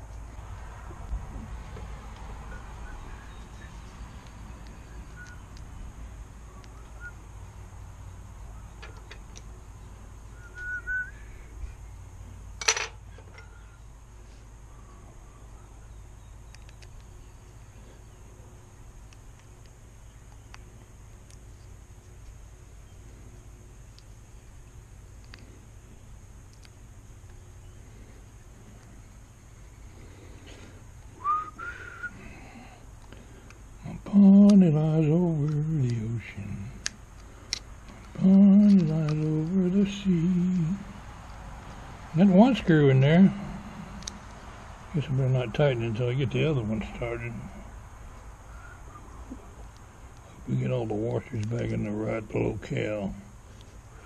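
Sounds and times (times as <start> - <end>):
steady low hum: 0.0 - 54.0
faint whistled chirps: 2.4 - 4.1, 4.7 - 5.6, 6.5 - 7.3, 10.3 - 11.8, 31.2 - 32.7, 48.5 - 49.5.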